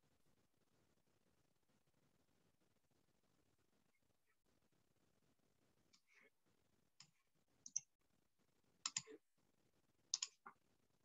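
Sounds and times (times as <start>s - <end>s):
faint sharp clicks: 10.1s - 10.5s.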